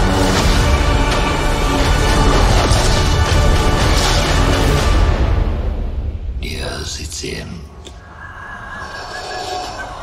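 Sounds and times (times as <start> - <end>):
breathy whisper-like voice: 7.8 - 10.0.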